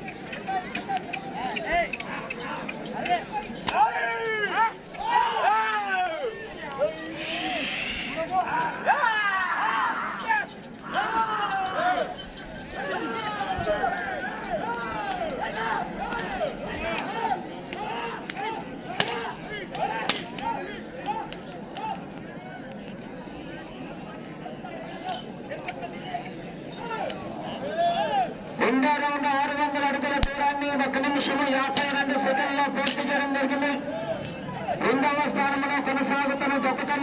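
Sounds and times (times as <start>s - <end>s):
men shouting calls: 0.0s - 22.0s
crowd voices: 0.0s - 37.0s.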